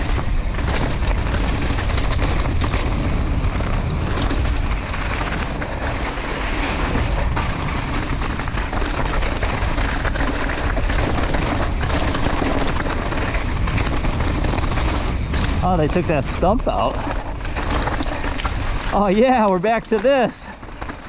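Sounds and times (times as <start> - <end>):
bike clattering over bumps: 0.0 - 21.0
tyres rolling over dirt and stones: 0.0 - 21.0
wind rushing on microphone: 0.0 - 21.0.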